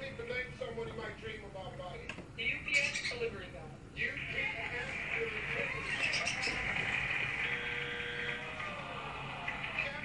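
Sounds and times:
budgerigars chattering: 0:02.7 - 0:03.3, 0:05.8 - 0:06.7.

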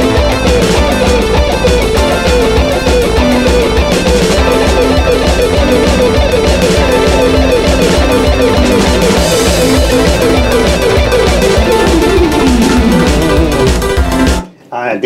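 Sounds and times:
electric guitar fast picking: 0:00.0 - 0:14.4.

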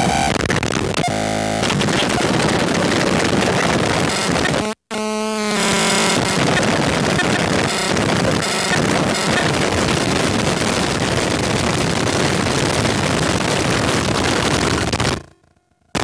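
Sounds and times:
buzzy synth tone: 0:00.0 - 0:16.0
harsh synth noise: 0:00.0 - 0:16.0.

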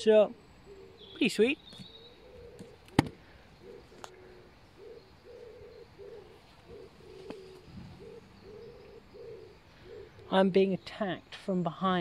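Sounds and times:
pigeon cooing: 0:00.6 - 0:10.5.

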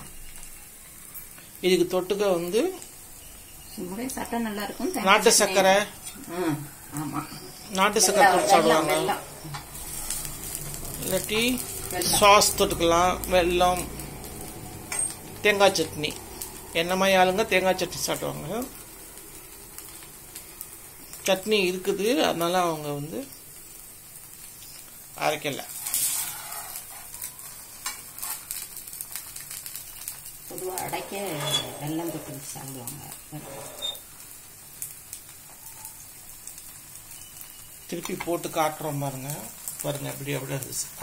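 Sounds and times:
batter sizzling in oil: 0:00.0 - 0:41.0.

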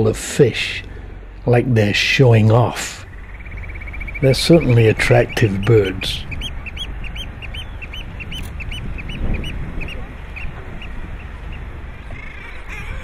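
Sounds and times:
steady rushing noise: 0:00.0 - 0:12.2
seabird calling: 0:00.7 - 0:13.0.

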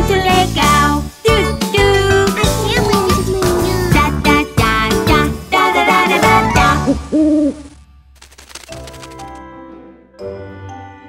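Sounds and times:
cartoon owl hoot: 0:06.6 - 0:07.7.

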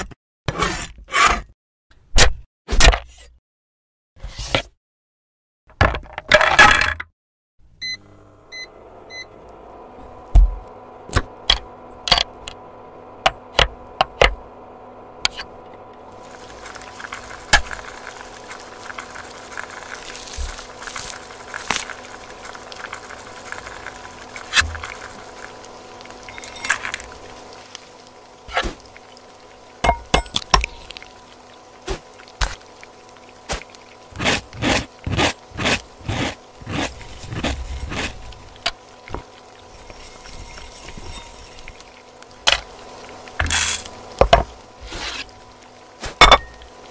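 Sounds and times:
steady hum: 0:07.7 - 0:46.9
induction hob beeping: 0:07.8 - 0:09.5.

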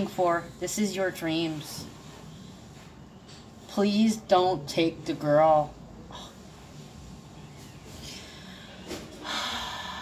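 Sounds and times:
woman inhaling: 0:08.0 - 0:10.0.

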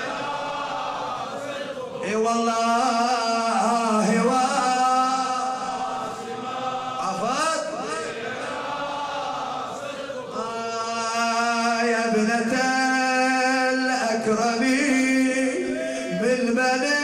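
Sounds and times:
man chanting a lament: 0:00.0 - 0:17.0.

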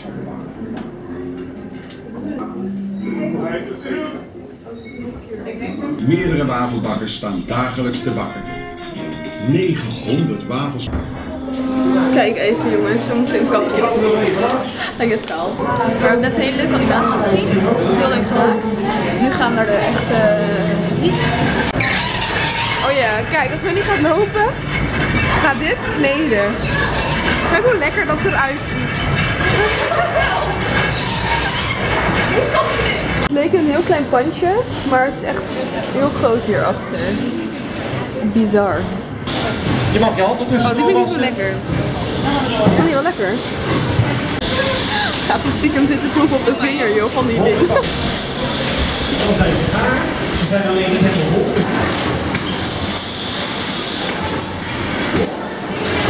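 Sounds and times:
faint voices: 0:00.0 - 0:52.8
people talking: 0:02.2 - 0:21.8, 0:22.8 - 0:24.6, 0:25.4 - 0:26.6, 0:27.4 - 0:30.7, 0:32.4 - 0:37.5, 0:42.2 - 0:43.4, 0:44.4 - 0:48.0, 0:49.1 - 0:51.9
factory machinery rumble: 0:10.8 - 0:56.0.

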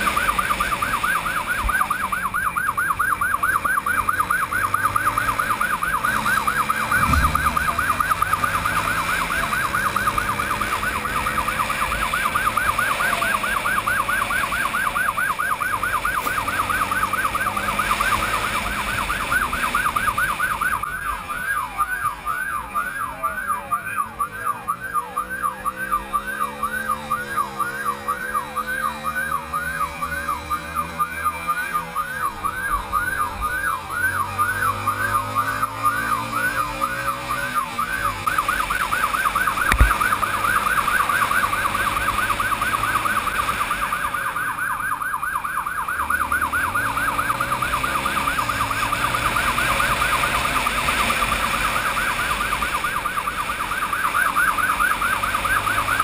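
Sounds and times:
motorcycle engine accelerating: 0:00.0 - 0:20.5, 0:45.2 - 0:56.0
motorcycle siren wailing: 0:00.0 - 0:56.0.

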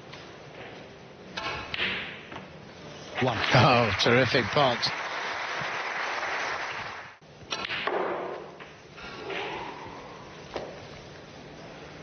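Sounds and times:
audience applauding: 0:03.5 - 0:07.2.

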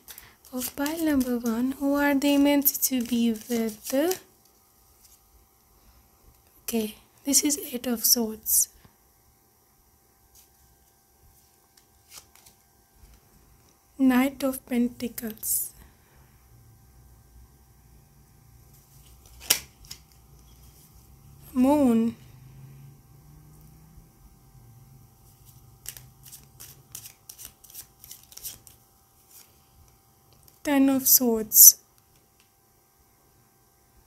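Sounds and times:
cards rustling and clicking: 0:00.0 - 0:05.2, 0:10.3 - 0:13.3, 0:18.8 - 0:21.0, 0:25.3 - 0:30.6.

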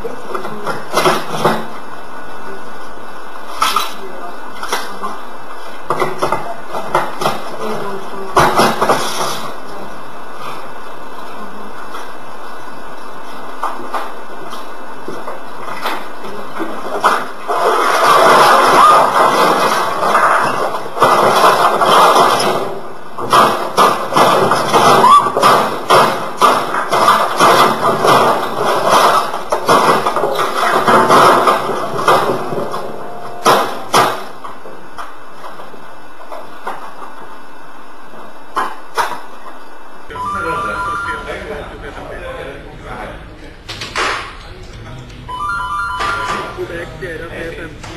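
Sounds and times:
office printer clattering and crashing: 0:15.7 - 0:34.4.

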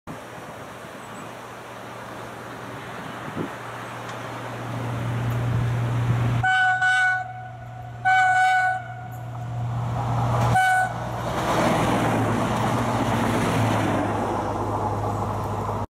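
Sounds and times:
train passing rumble: 0:00.1 - 0:15.9
train horn blasts: 0:06.4 - 0:09.3, 0:10.4 - 0:11.1.

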